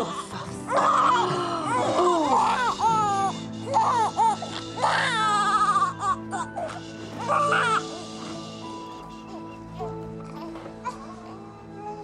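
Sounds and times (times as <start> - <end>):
background music with low notes: 0.0 - 12.0
newborn baby crying: 0.0 - 12.0.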